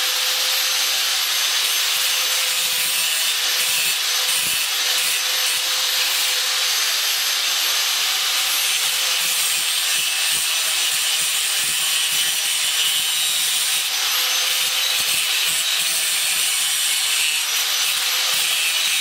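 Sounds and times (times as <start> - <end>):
power grinder grinding metal: 0.0 - 19.0.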